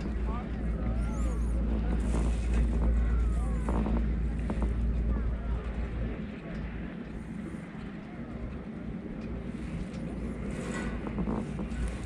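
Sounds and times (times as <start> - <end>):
faint voices talking: 0.0 - 12.0
wind rumble: 0.0 - 12.0
chair moving on microphone: 10.5 - 12.0.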